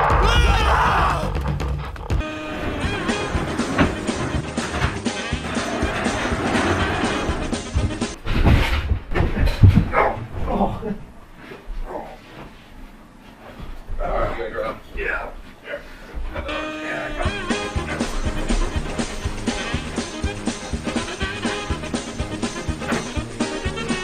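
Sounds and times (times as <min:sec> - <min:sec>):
background music: 0:00.0 - 0:08.2, 0:16.5 - 0:24.0
people running and tumbling: 0:00.0 - 0:15.2, 0:16.1 - 0:24.0.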